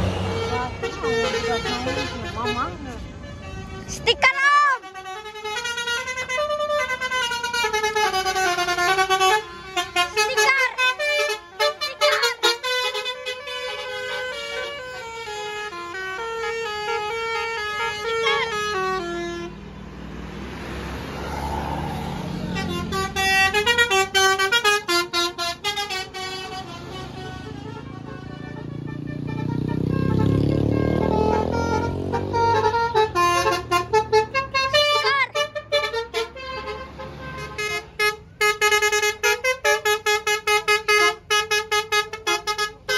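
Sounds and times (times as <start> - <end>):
passing motorcycles: 0.0 - 4.4, 16.8 - 38.2
bus musical horn melody: 0.0 - 42.9
engine rumble: 0.0 - 42.9.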